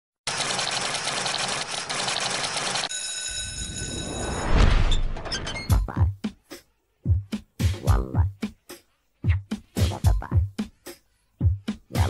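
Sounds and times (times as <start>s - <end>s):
fast mechanical rattle: 0.3s - 2.9s.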